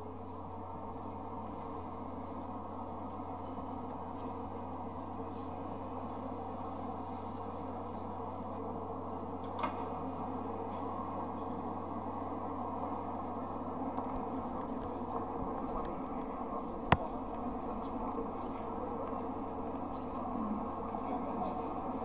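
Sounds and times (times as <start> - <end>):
constant low hum: 0.0 - 22.0.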